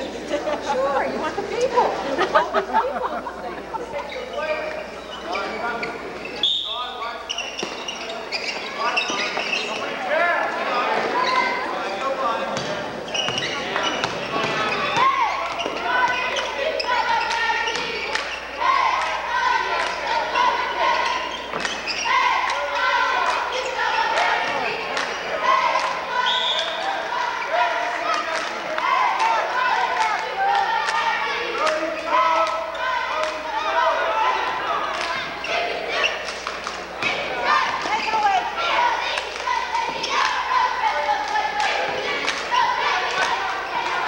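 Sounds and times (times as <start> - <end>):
spectators talking: 0.0 - 44.0.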